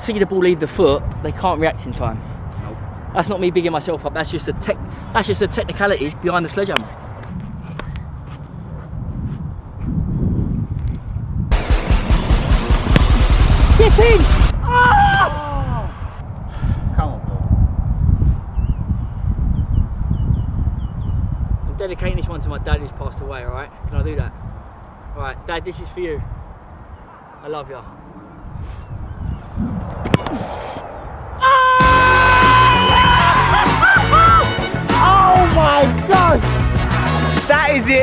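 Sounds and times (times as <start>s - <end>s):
loud music with sliding notes: 11.5s - 14.5s, 31.8s - 37.9s
man shouting in celebration: 31.5s - 36.5s.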